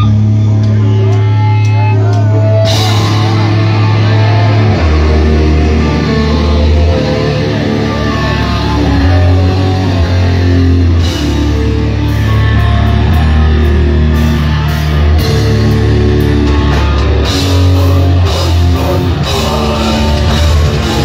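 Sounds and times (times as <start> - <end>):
heavy metal band playing: 0.0 - 21.0.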